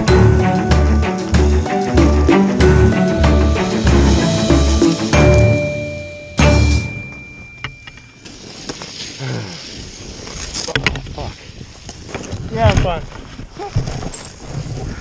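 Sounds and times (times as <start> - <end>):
rustling of jacket and snow: 8.0 - 15.0
wind noise on microphone: 9.7 - 15.0.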